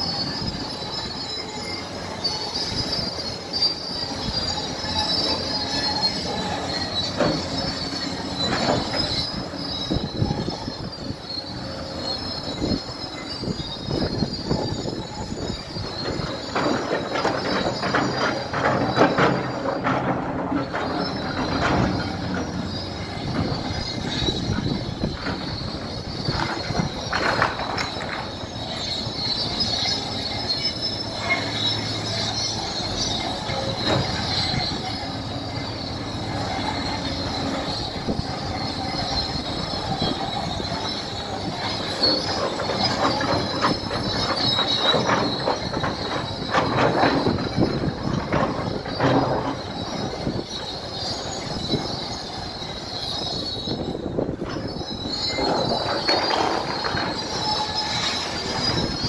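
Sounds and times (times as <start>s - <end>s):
diesel engine running: 0.0s - 59.0s
steel tracks squealing and clanking: 0.0s - 59.0s.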